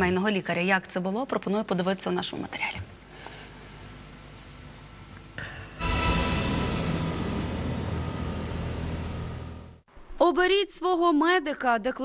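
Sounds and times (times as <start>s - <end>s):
low rumble: 5.8s - 9.9s.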